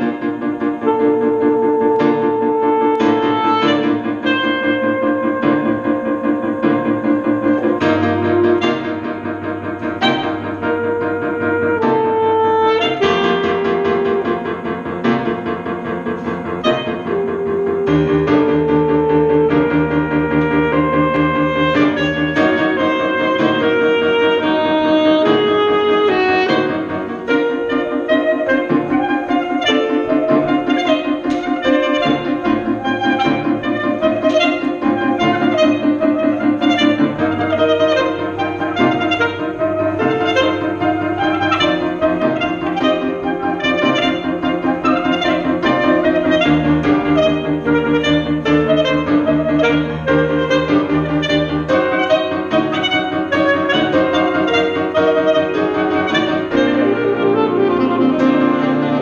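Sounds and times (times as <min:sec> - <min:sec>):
soprano saxophone: 0:00.0 - 0:14.6, 0:16.2 - 0:59.0
grand piano: 0:00.0 - 0:59.0.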